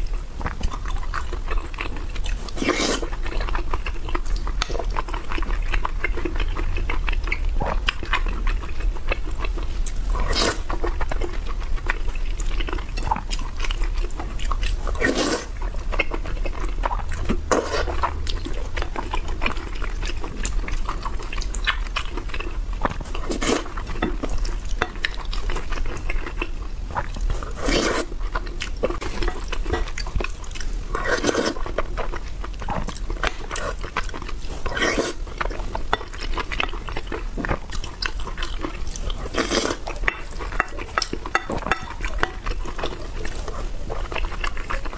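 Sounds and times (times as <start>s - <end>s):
wet chewing: 0.0s - 44.9s
noodle slurps: 2.6s - 3.1s, 15.0s - 15.6s, 27.5s - 28.1s.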